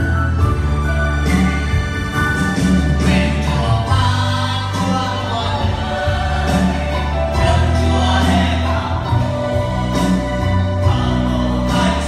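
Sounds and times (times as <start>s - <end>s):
electronic keyboards: 0.0s - 12.0s
held bass notes: 0.0s - 12.0s
group singing: 3.0s - 12.0s.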